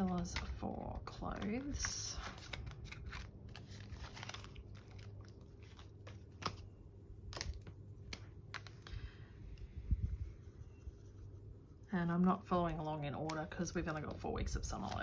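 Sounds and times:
plastic clicks and crinkles: 0:00.0 - 0:06.7, 0:07.3 - 0:09.0.

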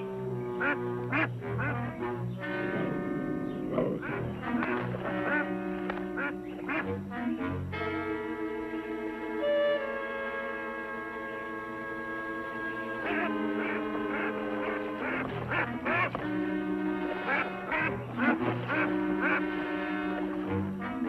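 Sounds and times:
orchestral music with held chords: 0:00.0 - 0:21.0
ducks quacking: 0:00.3 - 0:08.4, 0:12.4 - 0:21.0.

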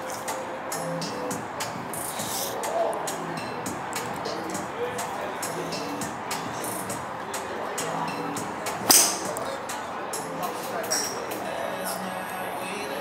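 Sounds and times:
background music: 0:00.0 - 0:13.0
golf driver striking ball: 0:08.8 - 0:09.4.

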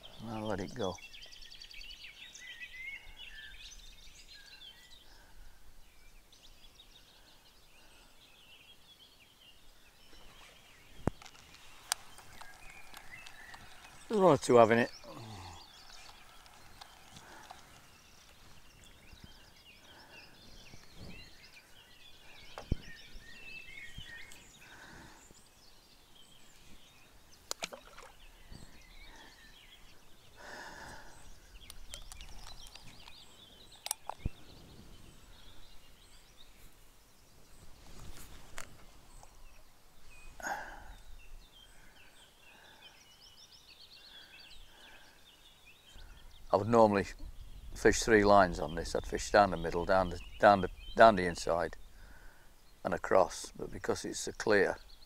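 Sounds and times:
birds chirping and calling: 0:00.0 - 0:55.0
sharp clicks: 0:33.8 - 0:34.4.

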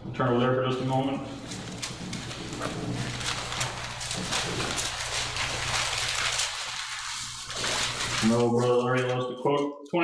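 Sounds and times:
thin pages rustling: 0:01.3 - 0:09.2.

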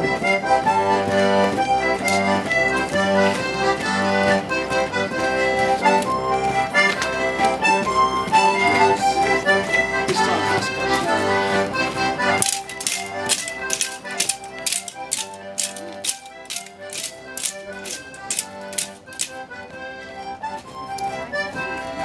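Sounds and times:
accordion playing folk dance tune: 0:00.0 - 0:22.0
sharp rhythmic clicks: 0:00.2 - 0:21.4.

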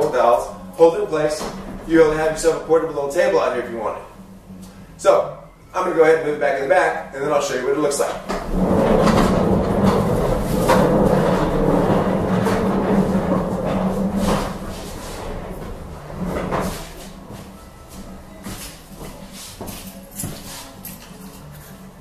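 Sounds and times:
cabinet rolling on wooden floor: 0:00.0 - 0:03.4, 0:07.4 - 0:19.8.

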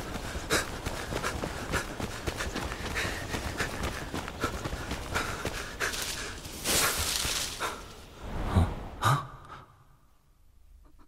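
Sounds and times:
heavy breathing: 0:00.0 - 0:08.0
hurried footsteps: 0:00.0 - 0:08.0.

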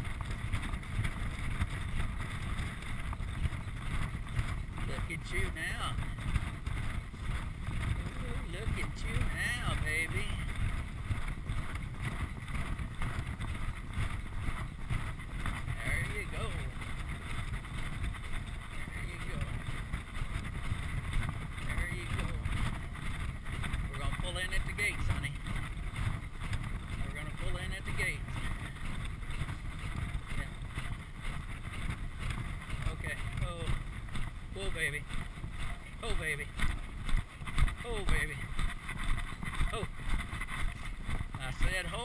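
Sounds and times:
muffled galloping hoofbeats: 0:00.0 - 0:42.0
wind buffeting microphone: 0:00.0 - 0:42.0.

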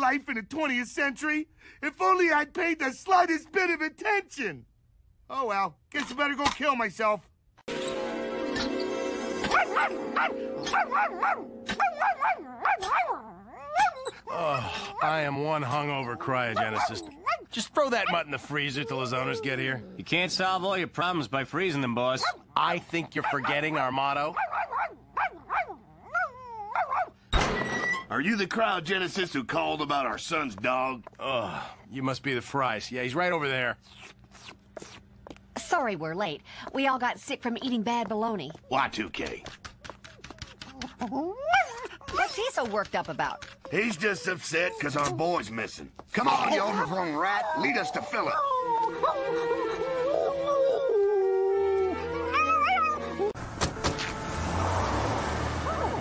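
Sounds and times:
background music: 0:07.7 - 0:12.1
cartoon dog yelping and whining: 0:09.5 - 0:20.0, 0:23.1 - 0:27.1, 0:40.0 - 0:45.6, 0:46.2 - 0:53.4
steady street noise: 0:51.5 - 0:56.0
sharp knocks: 0:53.5 - 0:54.2.

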